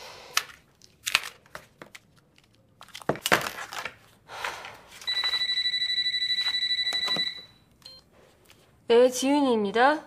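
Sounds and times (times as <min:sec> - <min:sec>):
phone ringing with electronic trill: 0:05.1 - 0:08.0.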